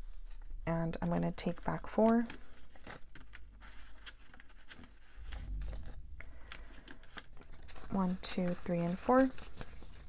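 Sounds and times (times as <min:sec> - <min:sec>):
banknotes rustling: 0:00.0 - 0:10.0
dull low bump: 0:05.2 - 0:06.3.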